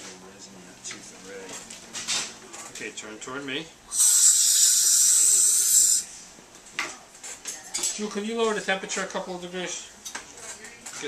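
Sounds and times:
air syringe hissing: 3.9s - 6.2s.

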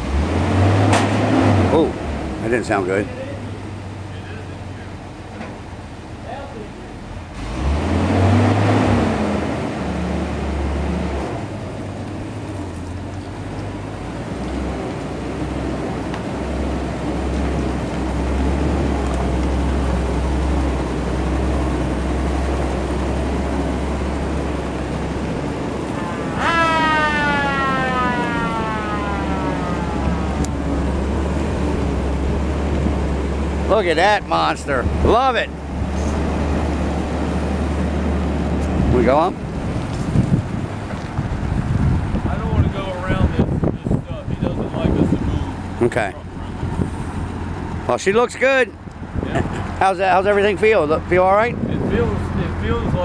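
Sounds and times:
vehicle engine rumbling: 0.0s - 53.0s
high whine falling in pitch: 23.9s - 34.2s.

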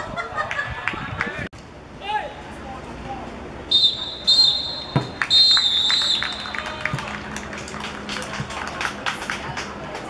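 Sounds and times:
referee's whistle blast: 3.7s - 6.5s.

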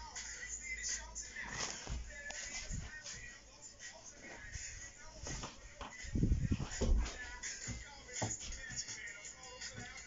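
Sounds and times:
microphone handling thumps: 1.4s - 3.4s, 4.4s - 8.9s.

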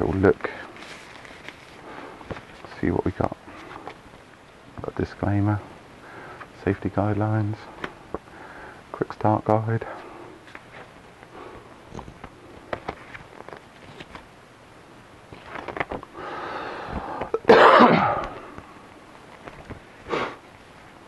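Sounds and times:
paper rustling and clicks: 11.9s - 14.3s, 15.3s - 16.1s, 19.3s - 19.8s.

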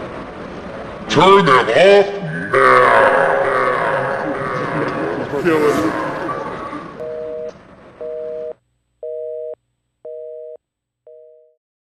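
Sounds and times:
background noise: 0.0s - 11.6s
telephone busy signal beeps: 7.0s - 11.6s.

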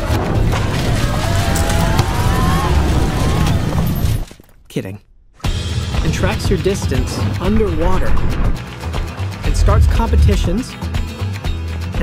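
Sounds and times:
music: 0.0s - 3.6s, 5.4s - 12.0s.

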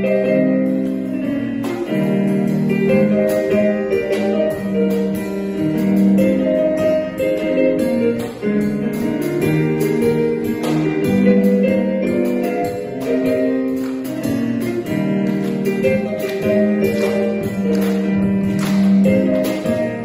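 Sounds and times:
digital piano melody: 0.0s - 20.0s
drum kit accompaniment: 0.0s - 20.0s.

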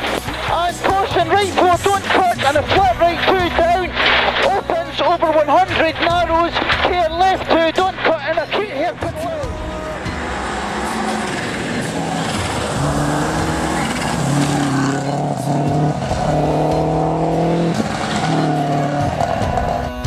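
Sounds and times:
rally car engine revving high: 0.0s - 20.0s.

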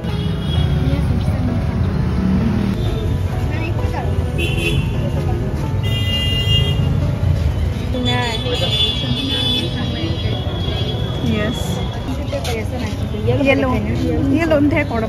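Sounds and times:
street traffic rumble: 0.0s - 15.0s
vehicle horn tooting: 5.8s - 7.0s
people's voices: 7.6s - 15.0s.

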